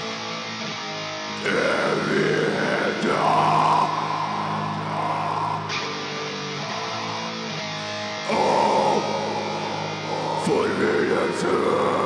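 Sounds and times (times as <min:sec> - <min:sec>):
distorted guitar chords: 0:00.0 - 0:12.0
harsh shouted vocal: 0:01.4 - 0:05.8, 0:08.3 - 0:12.0.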